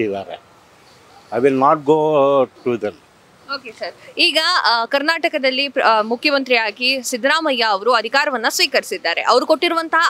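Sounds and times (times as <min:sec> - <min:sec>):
man speaking: 0:00.0 - 0:00.4, 0:01.3 - 0:03.0.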